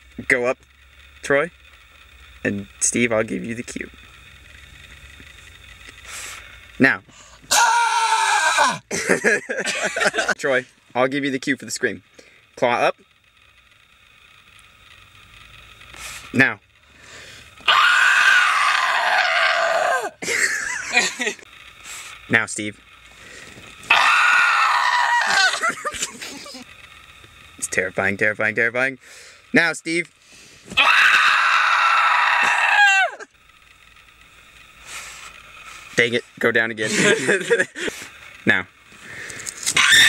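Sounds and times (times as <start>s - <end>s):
man screaming in terror: 7.5s - 8.9s, 17.6s - 20.2s, 23.9s - 25.9s, 30.8s - 33.3s, 39.8s - 40.0s.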